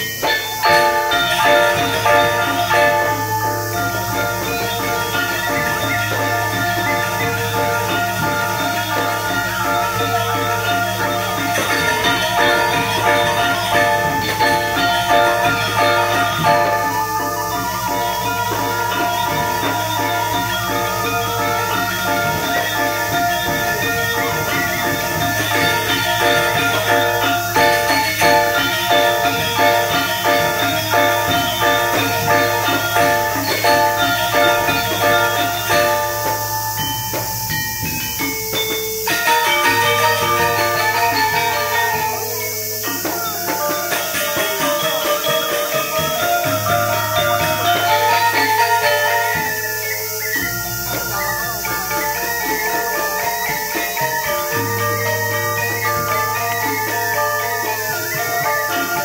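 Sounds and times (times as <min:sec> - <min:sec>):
metallophones ringing: 0:00.0 - 0:59.0.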